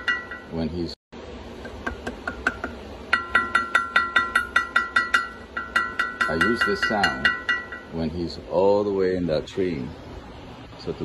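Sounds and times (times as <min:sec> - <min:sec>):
fork tapping metal bowl: 0:01.6 - 0:08.0.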